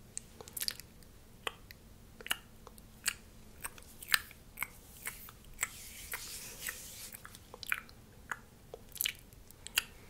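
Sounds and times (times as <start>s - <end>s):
wet mouth clicks: 0.2s - 5.8s, 6.6s - 10.0s.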